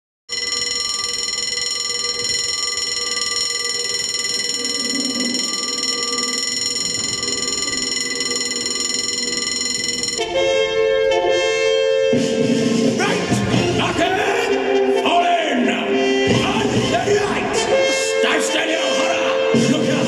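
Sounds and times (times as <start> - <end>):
steady held tone: 0.3 - 15.0.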